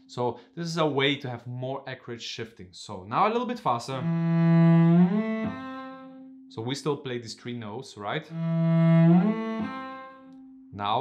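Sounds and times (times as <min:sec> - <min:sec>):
cello bowed notes sliding: 0:03.9 - 0:06.4, 0:08.2 - 0:10.6.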